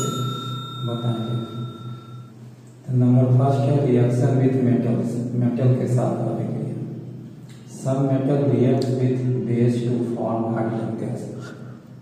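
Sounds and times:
bright bell chime ringing: 0:00.0 - 0:02.4.

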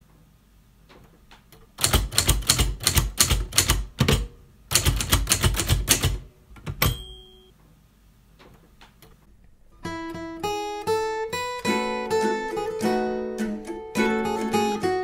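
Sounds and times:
typewriter keys striking: 0:01.8 - 0:07.0
typewriter bell ding: 0:06.8 - 0:07.5.

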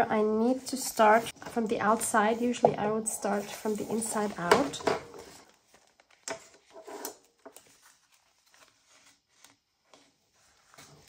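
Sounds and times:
paper rustling: 0:05.2 - 0:11.0.

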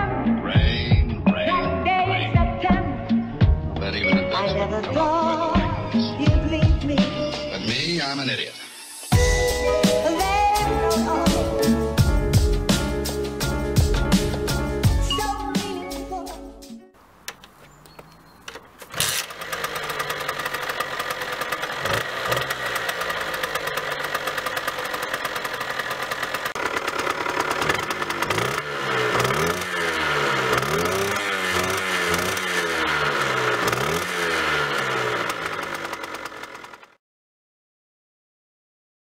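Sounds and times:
two-stroke moped engine revving: 0:18.0 - 0:37.0.

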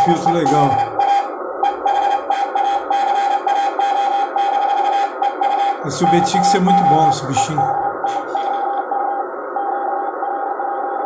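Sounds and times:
radio band hiss: 0:00.0 - 0:02.9, 0:05.1 - 0:10.8
morse code tone: 0:00.0 - 0:09.9.

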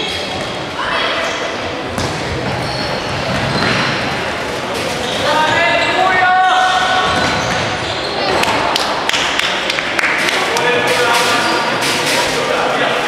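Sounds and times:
crowd and player noise: 0:00.0 - 0:13.0.

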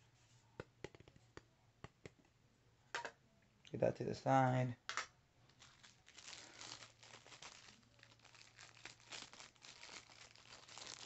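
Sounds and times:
packaging crinkling and rustling: 0:05.5 - 0:11.0.

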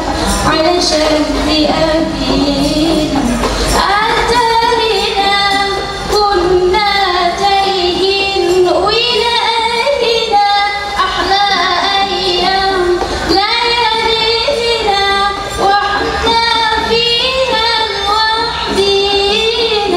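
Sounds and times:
woman singing through loudspeakers: 0:00.0 - 0:19.9.

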